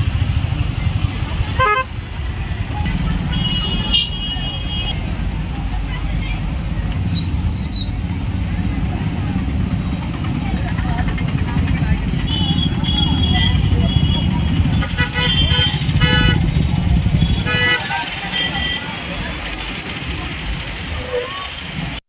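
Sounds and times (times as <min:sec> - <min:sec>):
low engine rumble: 0:00.0 - 0:22.0
street crowd noise: 0:00.0 - 0:22.0
vehicle horns tooting: 0:01.5 - 0:02.0, 0:02.9 - 0:05.1, 0:12.1 - 0:19.1.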